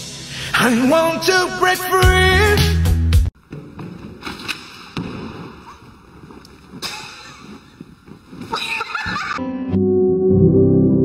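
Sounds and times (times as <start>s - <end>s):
music: 0.0s - 3.3s, 9.4s - 11.0s
springboard landing thuds: 3.4s - 9.4s.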